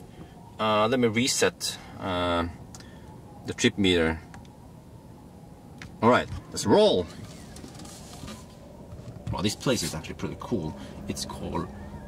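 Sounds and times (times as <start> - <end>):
electric car cabin noise: 5.8 - 12.0.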